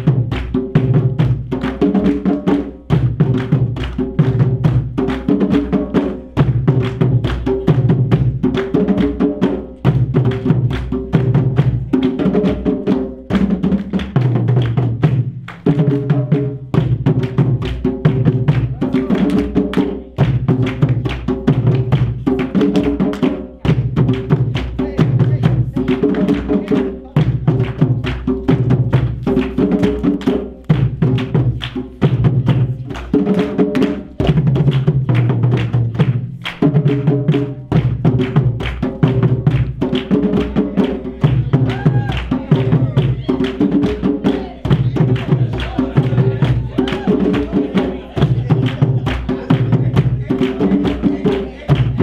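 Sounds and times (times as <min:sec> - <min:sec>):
hand drums fast rhythm: 0:00.0 - 0:52.0.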